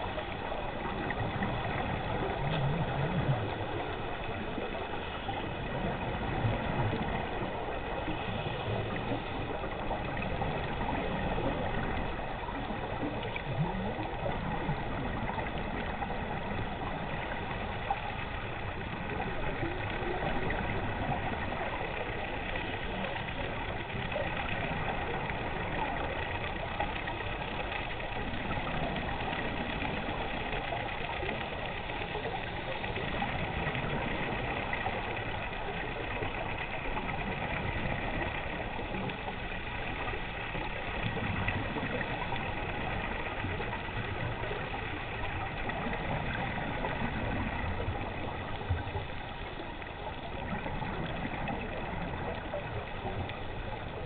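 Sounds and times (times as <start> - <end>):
boat motor drone underwater: 0.0 - 54.0
faint whining tones: 0.0 - 54.0.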